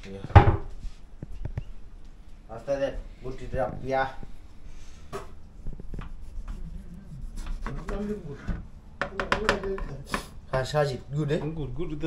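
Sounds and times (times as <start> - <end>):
people talking: 6.5 - 12.0.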